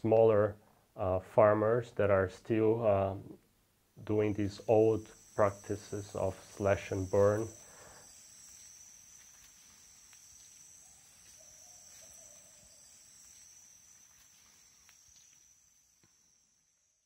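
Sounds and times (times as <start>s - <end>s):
insects chirring: 3.8s - 17.0s.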